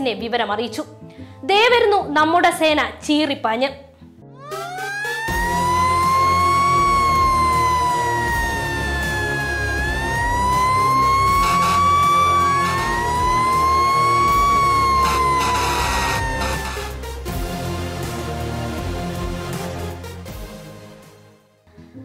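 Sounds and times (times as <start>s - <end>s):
fire engine siren wailing: 4.4s - 17.2s.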